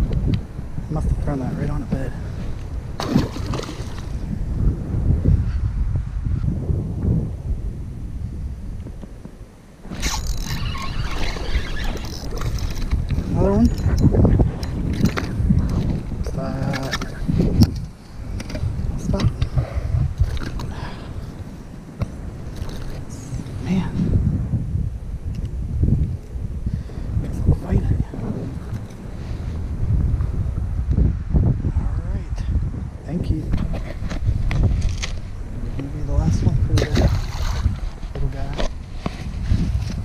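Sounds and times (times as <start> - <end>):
wind buffeting microphone: 0.0 - 40.0.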